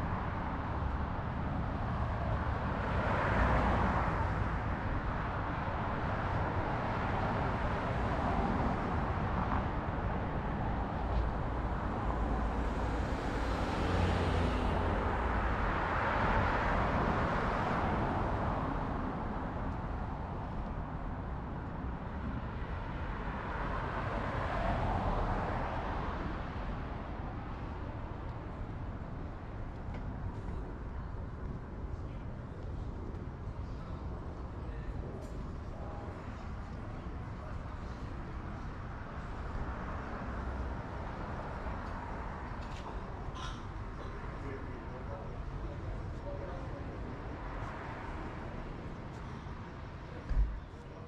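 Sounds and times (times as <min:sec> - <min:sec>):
cars passing on highway: 0:00.0 - 0:51.0.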